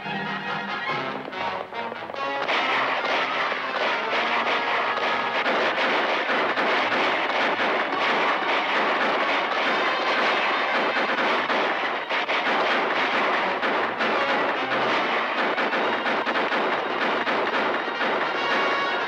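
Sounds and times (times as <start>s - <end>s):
orchestral film score: 0.0s - 19.0s
rapid rifle shots: 1.2s - 19.0s.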